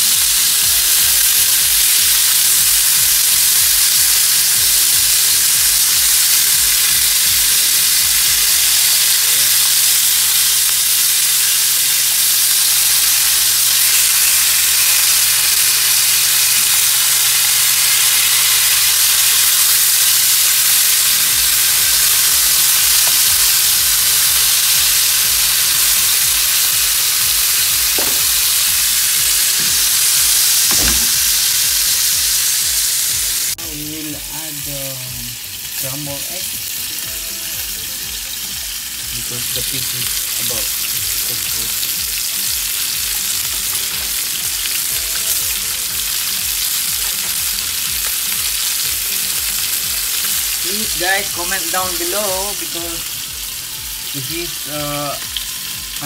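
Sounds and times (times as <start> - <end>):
fish sizzling in hot oil: 0.0 - 56.0
spatula knocks: 27.8 - 31.6.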